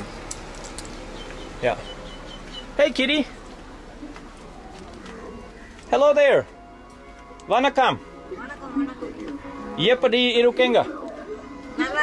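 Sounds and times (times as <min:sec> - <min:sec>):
faint bird cooing: 0:03.8 - 0:05.9.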